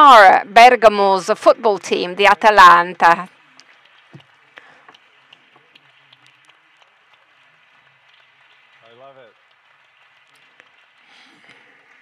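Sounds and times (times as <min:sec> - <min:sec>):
small ticks: 0:03.3 - 0:12.0
light clapping: 0:04.9 - 0:12.0.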